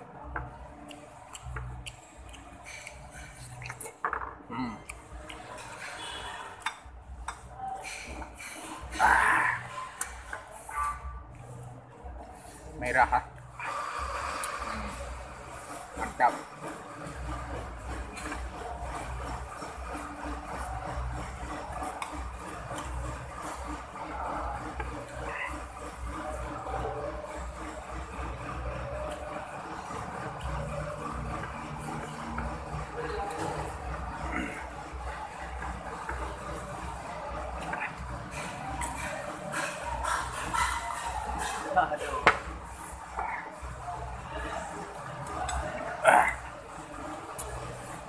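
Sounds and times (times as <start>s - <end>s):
indistinct background voices: 13.5s - 48.0s.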